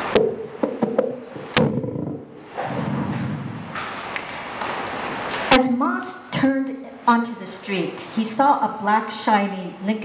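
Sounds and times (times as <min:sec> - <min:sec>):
low noise: 0:00.0 - 0:10.0
microphone handling thump: 0:00.2 - 0:04.0.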